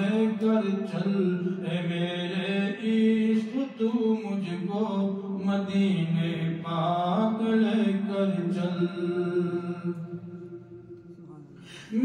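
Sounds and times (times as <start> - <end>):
man singing unaccompanied: 0.0 - 10.7.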